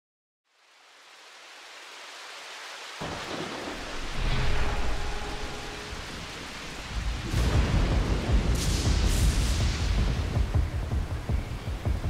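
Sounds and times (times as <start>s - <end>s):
rain hiss: 0.5s - 12.0s
deep thunder rumbling: 3.0s - 12.0s.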